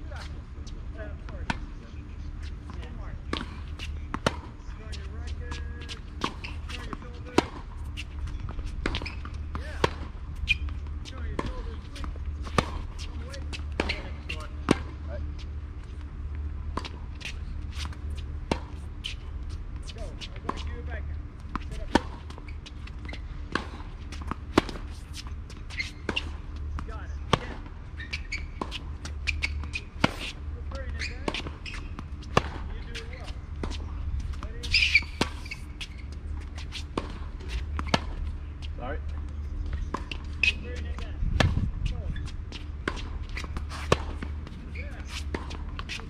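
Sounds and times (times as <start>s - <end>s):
low hum: 0.0s - 46.0s
racquets striking tennis ball: 2.6s - 46.0s.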